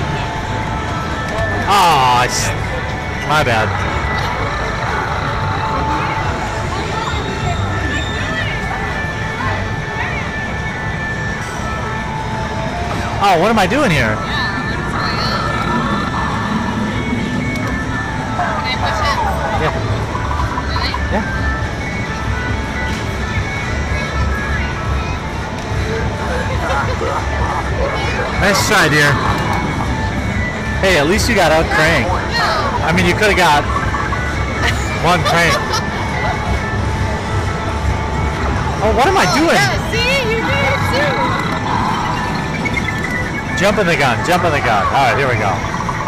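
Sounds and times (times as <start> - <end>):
crowd chatter: 0.0 - 12.0, 14.2 - 46.0
electronic game music and jingles: 0.0 - 46.0
steady electronic tones: 0.0 - 46.0
voice: 28.0 - 29.2, 34.6 - 35.7.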